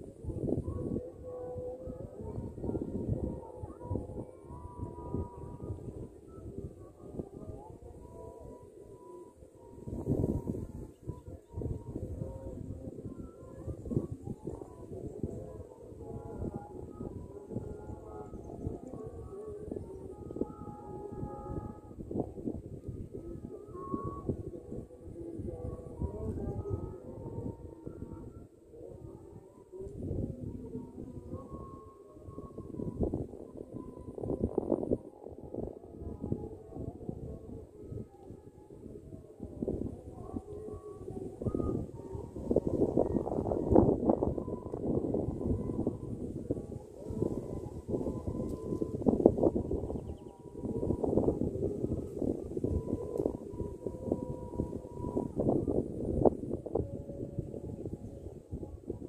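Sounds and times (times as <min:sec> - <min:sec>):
faint steady tones: 0:00.0 - 0:59.0
wind buffeting microphone: 0:00.0 - 0:59.0.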